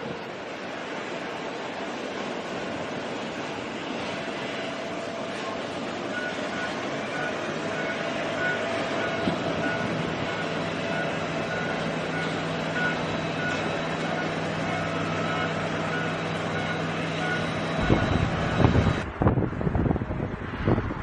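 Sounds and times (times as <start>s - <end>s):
jet engines roaring: 0.0s - 21.0s.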